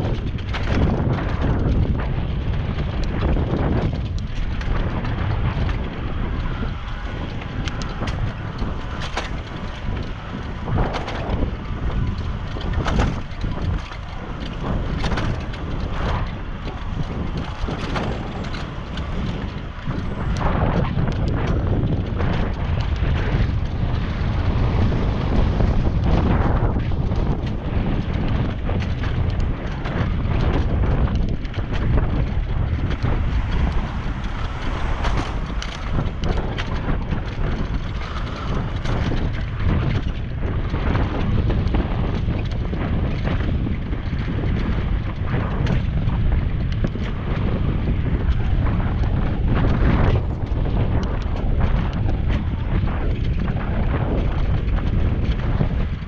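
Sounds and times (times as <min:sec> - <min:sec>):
tyre and road noise: 0:00.0 - 0:56.0
wind buffeting microphone: 0:00.0 - 0:56.0.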